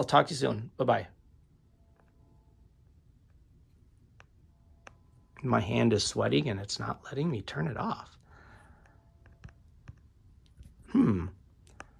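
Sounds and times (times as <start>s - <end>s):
fingers tapping smartphone: 1.8s - 5.6s, 8.4s - 11.9s
person saying hmm: 10.8s - 11.4s.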